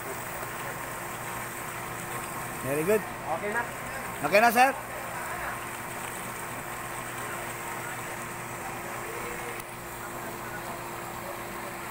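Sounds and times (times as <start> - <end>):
faint constant hum: 0.0 - 11.9.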